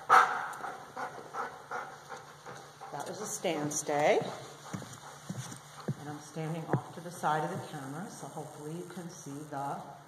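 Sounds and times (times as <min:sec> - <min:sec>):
footsteps on hard floor: 0:04.2 - 0:07.7.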